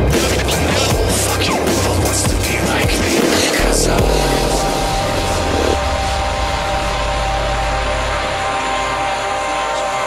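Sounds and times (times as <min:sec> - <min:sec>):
motorcycle engine drone: 0:01.4 - 0:10.0.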